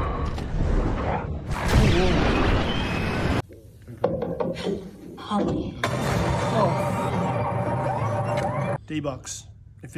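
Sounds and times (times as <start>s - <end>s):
action film soundtrack: 0.0s - 3.4s, 4.0s - 9.9s.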